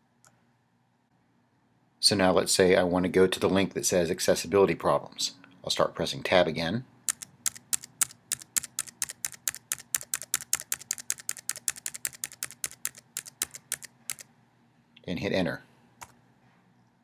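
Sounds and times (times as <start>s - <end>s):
keyboard key clicks: 7.1s - 14.2s.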